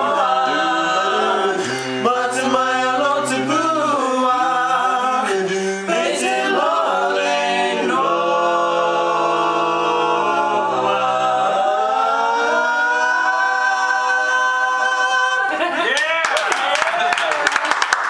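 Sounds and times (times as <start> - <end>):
a cappella quartet singing chord: 0.0 - 15.7
audience cheering: 12.5 - 18.0
audience clapping: 15.8 - 18.0.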